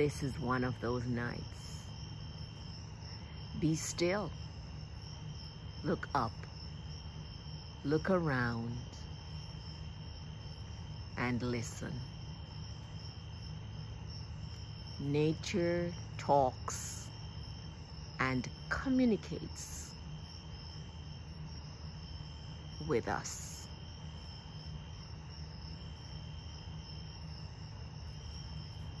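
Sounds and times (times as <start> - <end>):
crickets trilling: 0.0 - 29.0
night insects chorus: 0.0 - 29.0.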